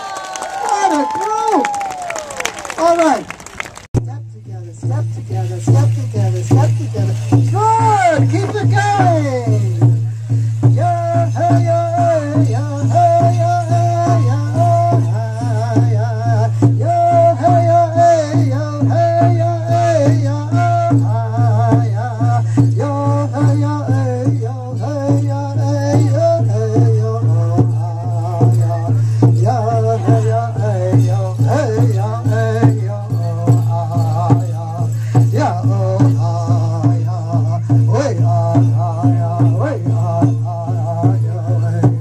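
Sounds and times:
rattles shaken: 2.7 - 42.0
low drumbeat: 4.0 - 42.0
voices singing: 10.7 - 42.0.

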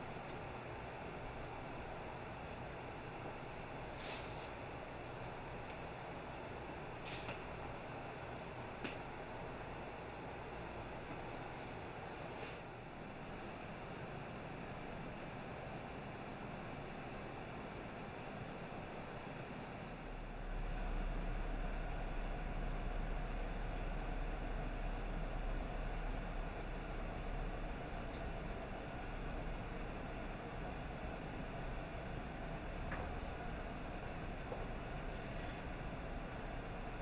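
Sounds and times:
steady background noise: 0.0 - 37.0.

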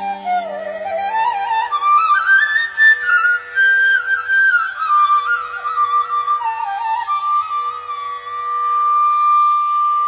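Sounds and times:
bamboo flute long note: 0.0 - 10.0.

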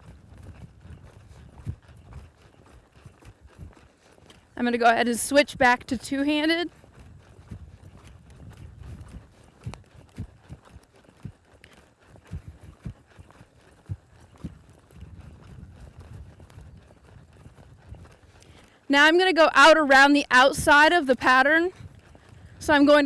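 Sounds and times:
muffled hoofbeats on sand: 0.0 - 23.0.

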